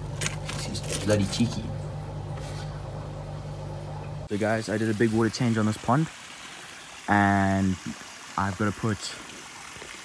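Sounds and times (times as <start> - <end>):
low hum: 0.0 - 4.3.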